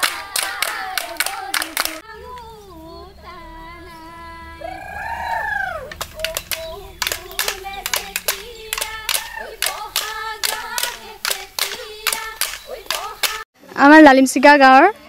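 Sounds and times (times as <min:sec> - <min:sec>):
bamboo clappers clacking: 0:00.0 - 0:02.4, 0:04.9 - 0:13.5
women singing: 0:00.0 - 0:13.5.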